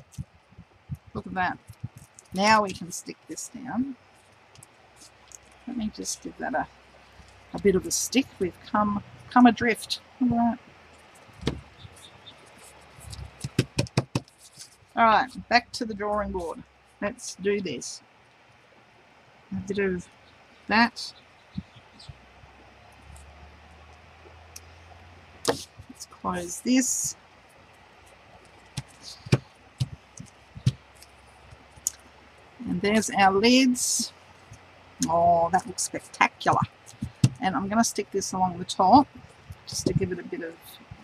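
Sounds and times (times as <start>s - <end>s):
paper crinkling and tapping: 0.0s - 2.9s, 11.0s - 15.0s, 28.4s - 31.9s, 36.5s - 37.4s
paper rustling: 11.1s - 15.0s
hands tapping on tabletop: 13.2s - 14.3s.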